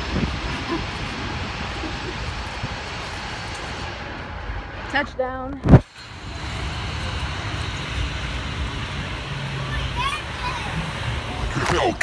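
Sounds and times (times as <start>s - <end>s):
jet engine noise: 0.0s - 12.0s
road traffic: 0.0s - 12.0s.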